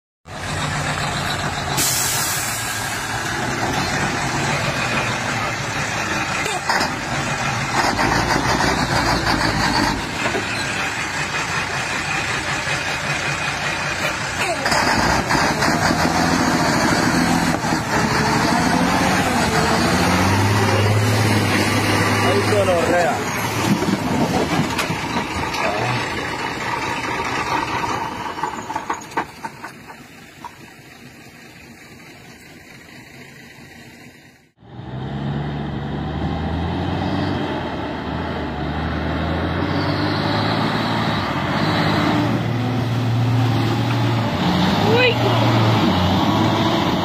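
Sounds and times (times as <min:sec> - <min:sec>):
heavy truck engine labouring: 0:00.3 - 0:47.0
short hiss: 0:01.8 - 0:03.1.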